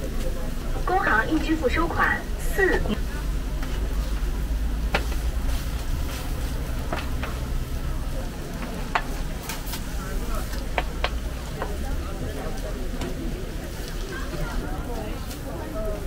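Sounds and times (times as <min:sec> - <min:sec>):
steady low rumble: 0:00.0 - 0:12.9
hot griddle sizzling: 0:00.0 - 0:16.0.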